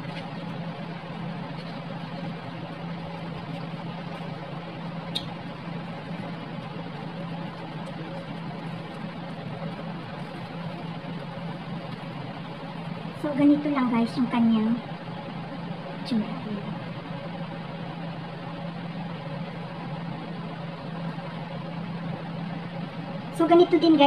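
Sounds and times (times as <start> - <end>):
machine hum: 0.0 - 24.0.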